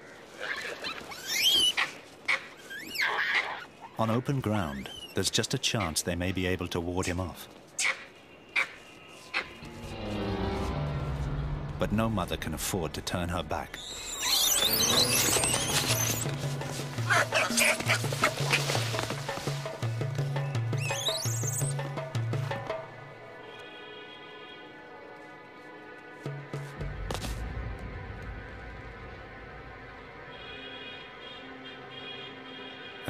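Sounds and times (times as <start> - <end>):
monkeys screaming shrilly: 0.4 - 4.0, 4.7 - 5.2, 13.8 - 16.3, 17.1 - 18.9, 20.8 - 21.7.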